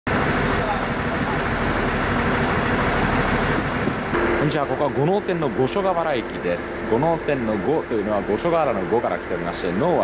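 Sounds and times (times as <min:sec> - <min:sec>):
diesel engine rumble: 0:00.1 - 0:10.0.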